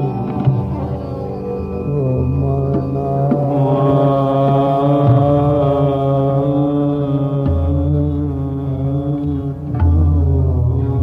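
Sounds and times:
steady drone: 0.0 - 11.0
tabla strokes: 0.0 - 11.0
man singing sustained note: 1.1 - 11.0.

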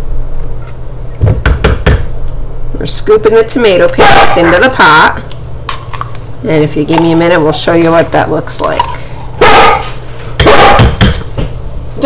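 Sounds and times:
dog barking: 4.0 - 4.8, 9.4 - 11.0.

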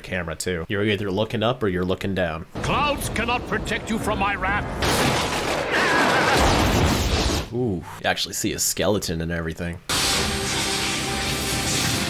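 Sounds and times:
dramatic music: 2.6 - 5.4.

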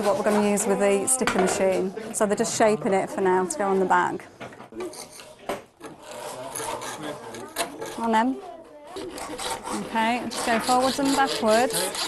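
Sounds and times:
hand file rasping on acrylic: 0.0 - 0.8, 4.8 - 12.0.

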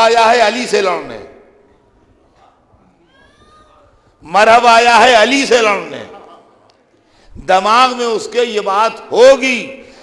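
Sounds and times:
faint high-pitched cry: 1.7 - 4.2.

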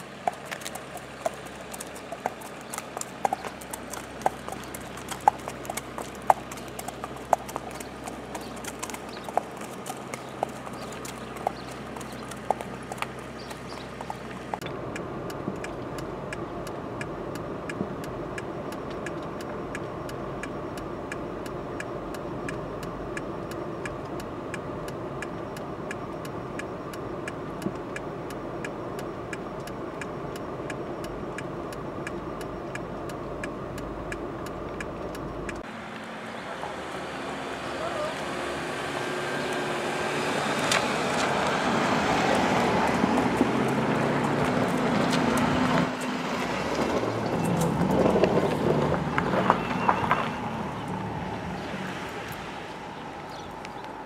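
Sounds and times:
hooves clip-clopping on wet pavement: 0.0 - 14.7, 15.3 - 54.0
vehicle engine and road noise: 0.0 - 54.0.

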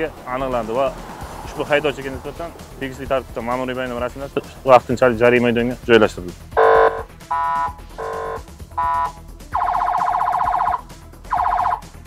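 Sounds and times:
electronic horn blasts: 6.6 - 11.8.

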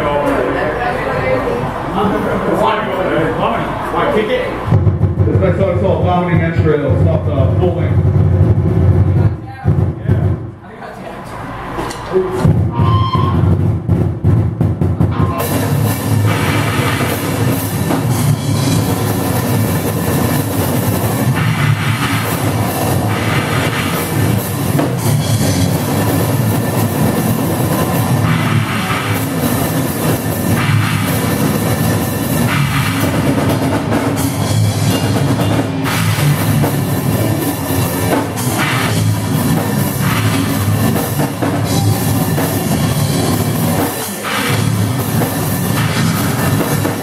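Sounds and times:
drum kit played fast: 12.1 - 47.0
live band playing: 12.2 - 13.7, 15.0 - 47.0
cymbals washing: 15.0 - 47.0.

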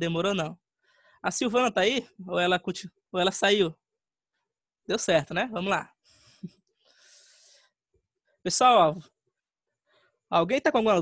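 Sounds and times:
soft breath into microphone: 0.8 - 1.2, 6.0 - 7.8.

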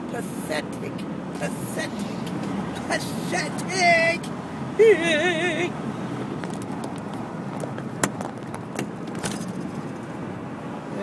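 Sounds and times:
car engine and tyre noise: 0.0 - 11.0.

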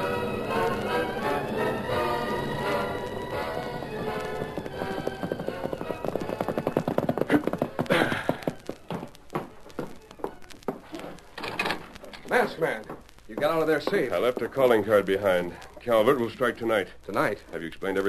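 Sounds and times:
orchestral music: 0.0 - 7.5
galloping horse hoofbeats: 1.7 - 11.0, 12.0 - 16.6.

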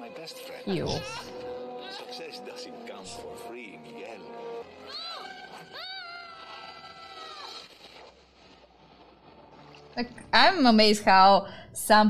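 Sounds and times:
boy screaming: 4.9 - 7.5.

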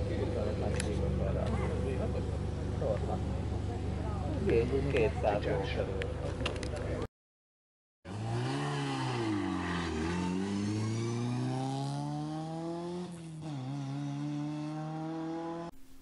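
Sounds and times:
car engine revving: 8.1 - 15.8.

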